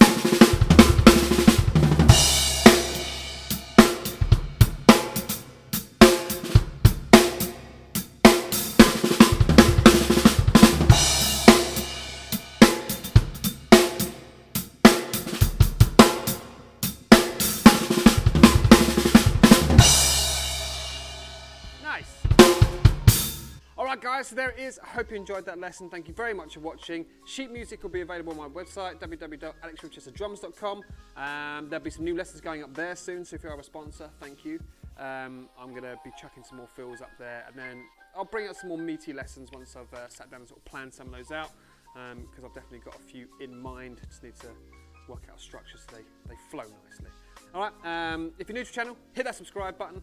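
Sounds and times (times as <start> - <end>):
bass drum: 0.0 - 23.6
drum kit fills on snare and toms: 0.0 - 23.6
ringing crash cymbal: 2.1 - 4.3, 10.9 - 14.4.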